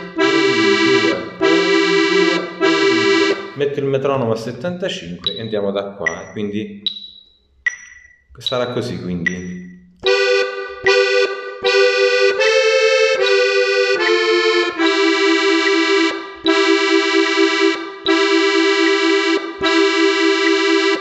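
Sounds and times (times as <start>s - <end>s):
piano accordion playing: 0.0s - 3.8s, 10.0s - 21.0s
faint metronome ticks: 5.2s - 21.0s.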